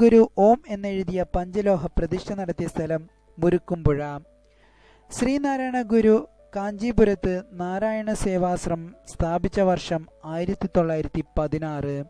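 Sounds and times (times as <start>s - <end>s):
person narrating rapidly: 0.0s - 4.2s, 5.1s - 12.0s.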